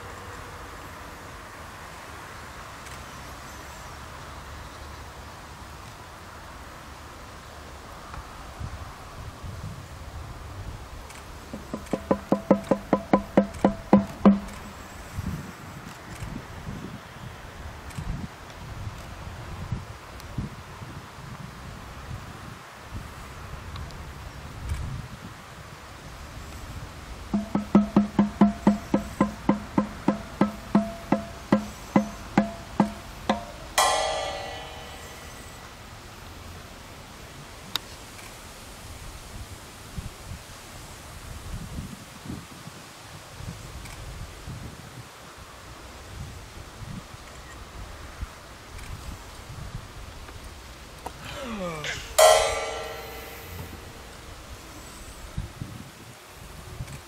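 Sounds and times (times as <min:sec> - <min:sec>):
rapid pitched hand percussion knocks: 0:11.5 - 0:14.8, 0:27.3 - 0:35.8, 0:52.2 - 0:54.1
cymbal crash: 0:30.1 - 0:36.0, 0:52.1 - 0:54.4.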